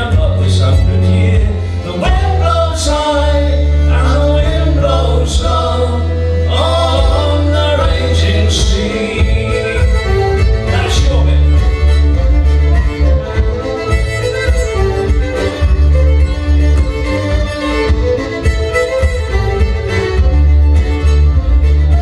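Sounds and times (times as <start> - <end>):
button accordion chords: 0.0 - 22.0
fiddle melody: 0.0 - 22.0.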